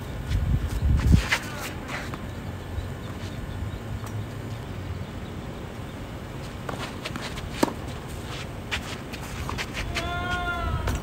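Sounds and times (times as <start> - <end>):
tennis ball bouncing: 6.4 - 10.1
racket hitting tennis ball: 6.5 - 11.0.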